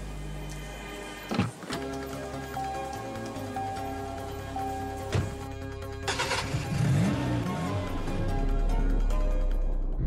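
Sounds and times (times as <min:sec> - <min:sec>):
background music: 0:00.0 - 0:10.0
car engine starting and revving: 0:06.0 - 0:08.5.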